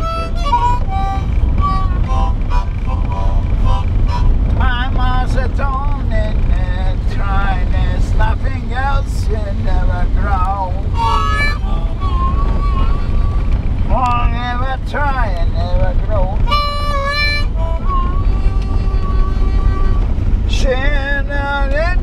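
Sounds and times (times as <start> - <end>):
hand whistling notes: 0.0 - 4.4, 11.0 - 13.6
vehicle driving on gravel: 0.0 - 22.0.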